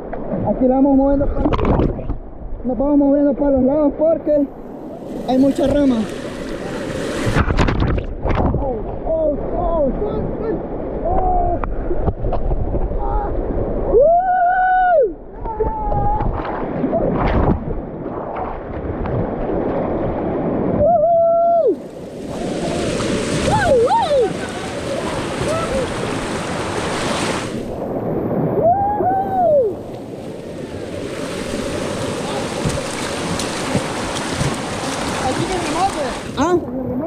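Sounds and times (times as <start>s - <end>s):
floodwater rushing and splashing: 0.0s - 14.0s, 15.3s - 37.0s
people shouting: 22.4s - 26.1s.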